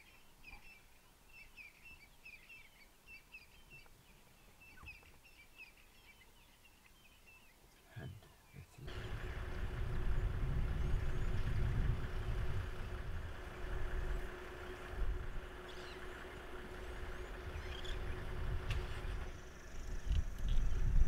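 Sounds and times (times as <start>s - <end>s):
faint bird chirps: 0.0s - 8.9s, 14.0s - 21.0s
vehicle engine idling: 8.9s - 21.0s.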